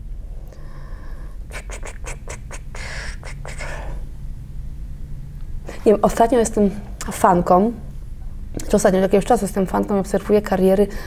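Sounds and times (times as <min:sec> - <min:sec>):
steady low hum: 0:00.0 - 0:11.0
short scratchy noises: 0:01.5 - 0:03.7.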